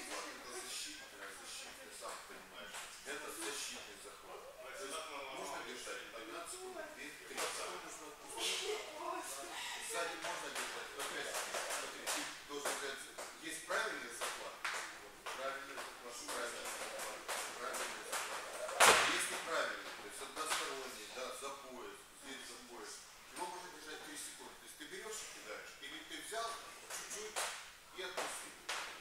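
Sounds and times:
echoing indistinct talking: 3.2s - 13.0s, 15.5s - 20.9s
loud sharp crack: 18.8s - 19.4s.

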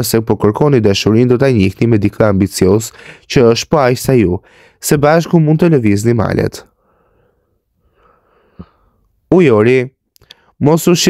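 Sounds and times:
faint breath intake: 6.8s - 9.1s.

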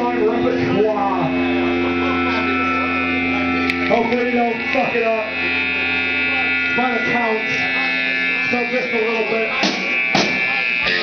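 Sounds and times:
amplifier hum and drone: 0.0s - 11.0s
people talking: 0.0s - 11.0s.

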